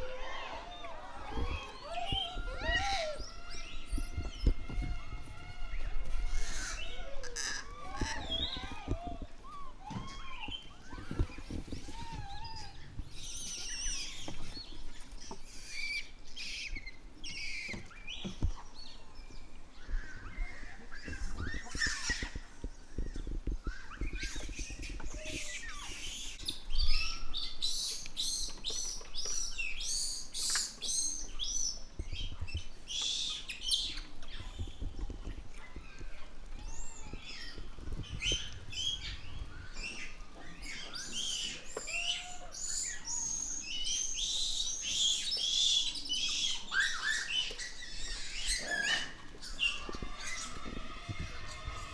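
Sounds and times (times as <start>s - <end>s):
monkey coo calls: 0.0s - 14.2s, 38.2s - 43.4s, 45.0s - 51.9s.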